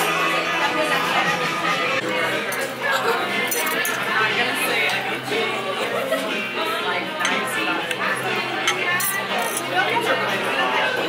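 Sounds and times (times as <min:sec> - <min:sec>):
background music: 0:00.0 - 0:11.0
restaurant chatter: 0:00.0 - 0:11.0
cutlery clinking on a plate: 0:02.5 - 0:04.0, 0:07.2 - 0:09.8.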